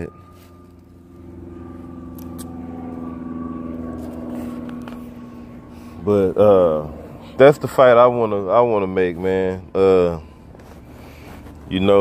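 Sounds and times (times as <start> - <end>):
steady low hum: 0.0 - 12.0
vehicle passing: 0.0 - 12.0.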